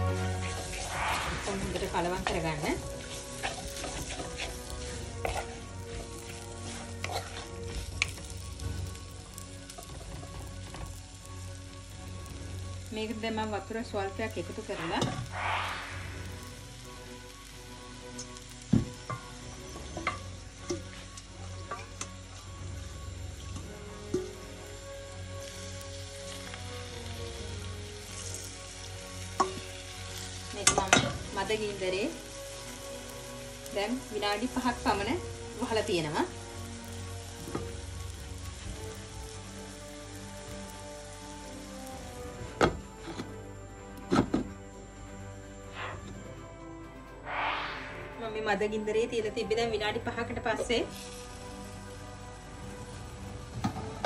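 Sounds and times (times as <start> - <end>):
curry sizzling in a pot: 0.0 - 46.3, 48.3 - 54.0
spoon scraping a metal bowl: 5.2 - 5.6, 7.0 - 7.5.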